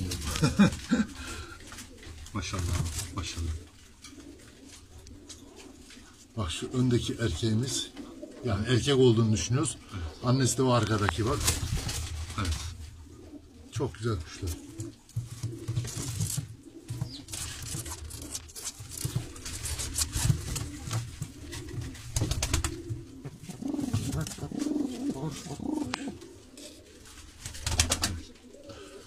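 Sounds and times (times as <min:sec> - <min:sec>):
pigeons cooing: 0:00.0 - 0:29.0.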